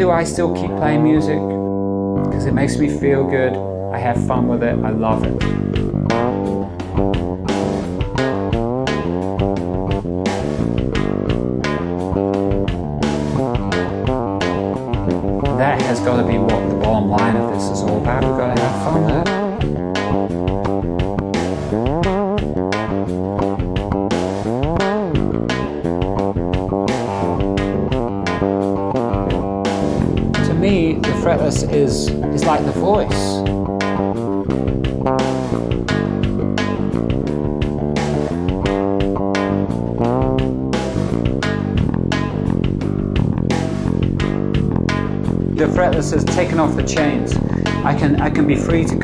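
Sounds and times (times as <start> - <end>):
backing beat: 0.0 - 49.0
fretless electric bass: 0.0 - 49.0.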